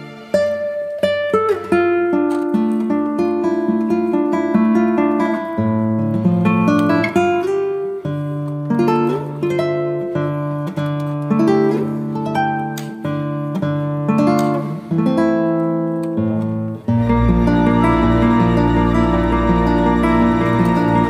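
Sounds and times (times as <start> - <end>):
acoustic guitar melody: 0.0 - 21.0.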